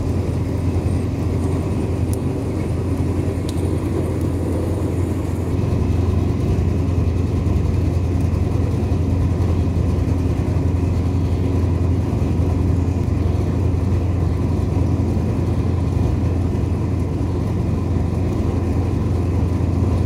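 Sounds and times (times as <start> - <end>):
roller machine droning: 0.0 - 20.0.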